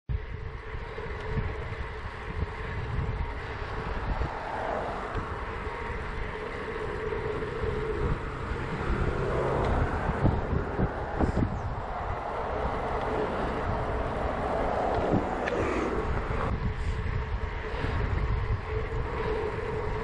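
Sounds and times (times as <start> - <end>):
tyres rolling on asphalt: 0.1 - 20.0
wind buffeting microphone: 0.1 - 20.0.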